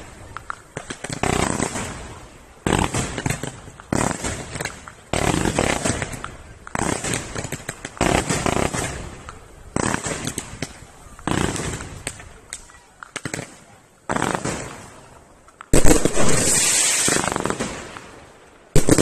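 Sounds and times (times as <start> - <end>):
fireworks bangs: 0.0 - 19.0
fireworks crackle: 0.0 - 19.0.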